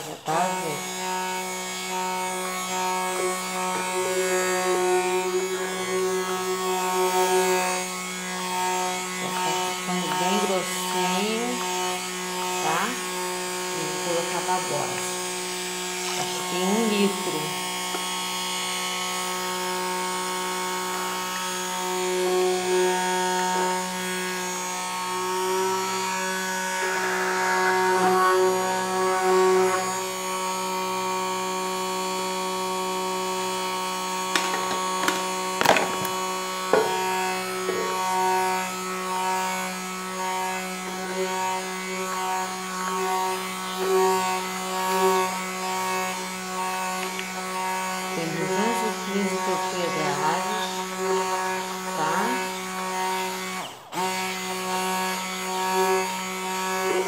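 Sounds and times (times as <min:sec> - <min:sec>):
stick blender motor hum: 0:00.0 - 0:57.0.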